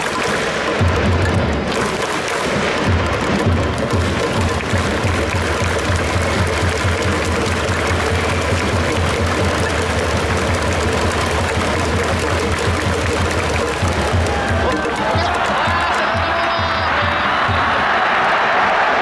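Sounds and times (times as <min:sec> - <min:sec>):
crowd clapping along: 0:00.0 - 0:19.0
repeating drumbeat: 0:00.0 - 0:19.0
stadium cheering music: 0:00.0 - 0:19.0.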